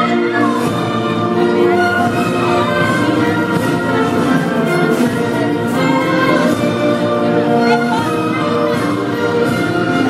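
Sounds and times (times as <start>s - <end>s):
choir with orchestra: 0.0s - 10.0s.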